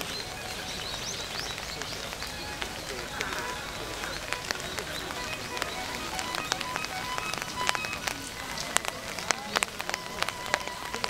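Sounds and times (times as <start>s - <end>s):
faint distant voices: 0.0s - 11.0s
sharp ticks and taps: 0.0s - 11.0s
steady background hiss: 0.0s - 11.0s.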